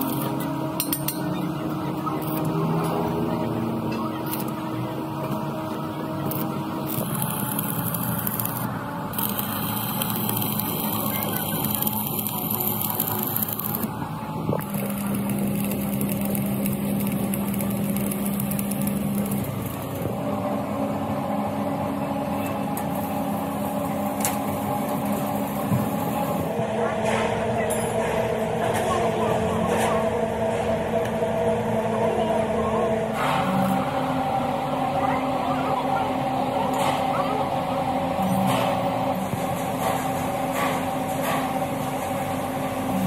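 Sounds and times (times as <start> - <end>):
welding arc crackling and hissing: 0.0 - 0.5, 2.2 - 2.7, 4.2 - 4.8, 6.0 - 20.2, 22.2 - 26.5
steady low hum: 0.0 - 43.0.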